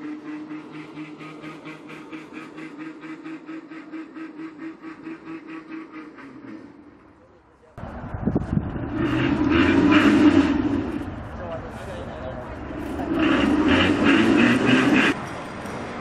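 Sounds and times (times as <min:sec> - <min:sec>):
rail car running on track: 0:00.0 - 0:16.0
people's voices: 0:07.0 - 0:16.0.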